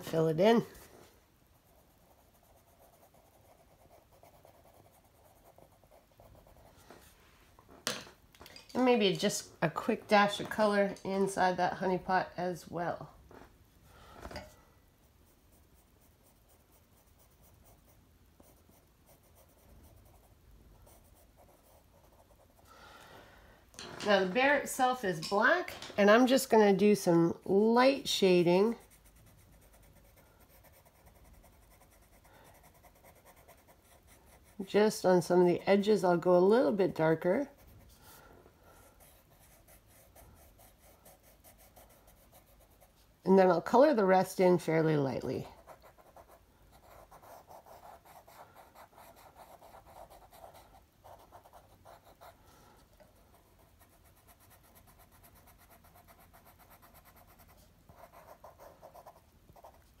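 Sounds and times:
pencil scratching on paper: 0:01.5 - 0:07.1, 0:15.0 - 0:22.7, 0:26.2 - 1:00.0.

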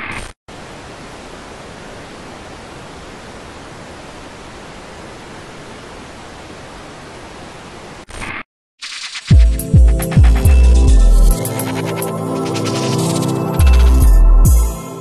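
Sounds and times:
tv static hiss: 0:00.0 - 0:09.0.

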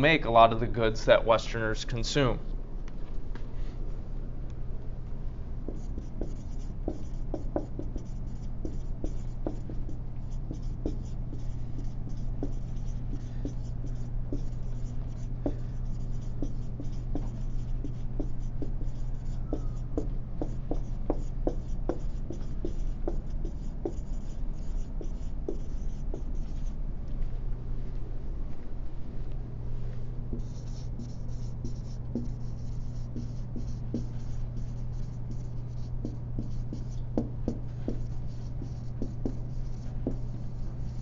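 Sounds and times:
steady low hum: 0:00.0 - 0:41.0
handwriting scratching strokes: 0:05.7 - 0:26.7, 0:30.3 - 0:41.0.

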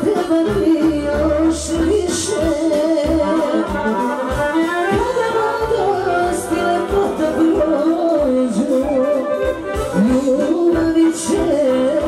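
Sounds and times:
piano accordion: 0:00.0 - 0:12.0.

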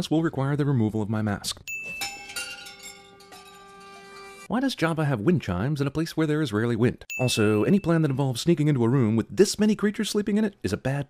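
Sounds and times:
wind chimes ringing: 0:01.7 - 0:04.5, 0:07.1 - 0:08.6.

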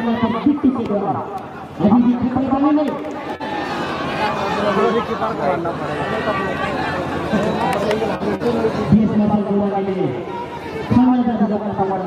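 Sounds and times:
man talking: 0:00.0 - 0:03.1
crowd chatter: 0:00.0 - 0:12.0.

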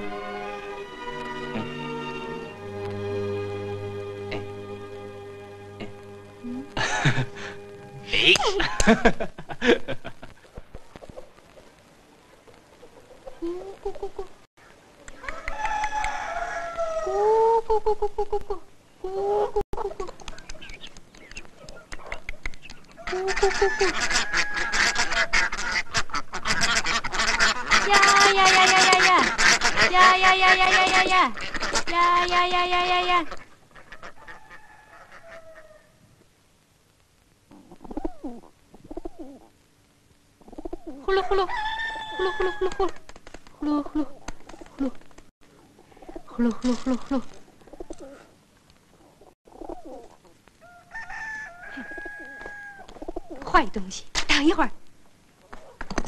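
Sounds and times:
chickens calling: 0:05.8 - 0:36.1, 0:37.5 - 0:39.6, 0:40.4 - 0:53.6
chickens clucking: 0:10.3 - 0:18.7, 0:19.4 - 0:35.9, 0:37.5 - 0:39.5, 0:40.4 - 0:44.9, 0:45.5 - 0:53.6
rooster crowing: 0:15.2 - 0:17.3, 0:23.0 - 0:25.4, 0:34.2 - 0:36.0, 0:41.2 - 0:42.9, 0:50.6 - 0:52.9
fowl short calls: 0:23.0 - 0:32.0.

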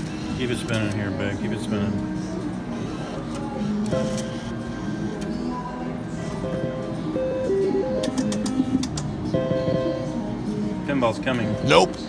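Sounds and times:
music: 0:00.0 - 0:12.0
electronic slot-machine tones: 0:03.6 - 0:05.2, 0:06.3 - 0:10.3, 0:11.3 - 0:12.0
slot machine reels clicking: 0:07.5 - 0:09.8.

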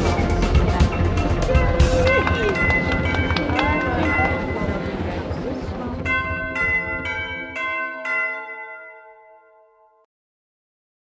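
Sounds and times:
crowd chatter: 0:00.0 - 0:07.7
ringing bell-like chimes: 0:00.1 - 0:10.1.

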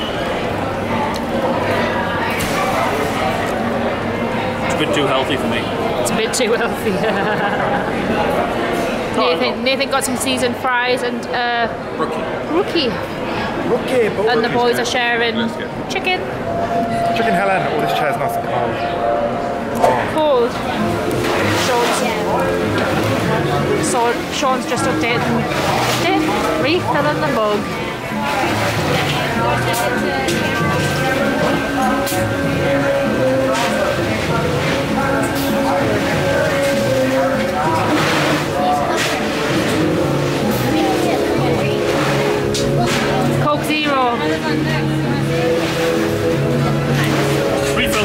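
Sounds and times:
background music: 0:00.0 - 0:48.0
hubbub of indistinct voices: 0:00.0 - 0:48.0.

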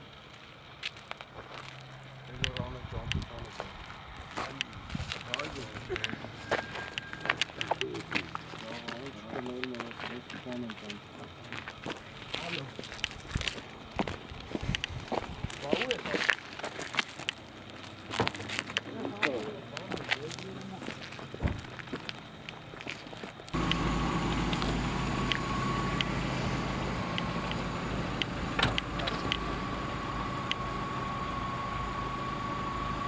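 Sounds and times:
men talking in low voices: 0:02.3 - 0:06.2, 0:07.6 - 0:11.3, 0:12.3 - 0:12.8, 0:15.6 - 0:16.3, 0:18.9 - 0:21.0
sharp clicks and knocks: 0:28.2 - 0:29.4.

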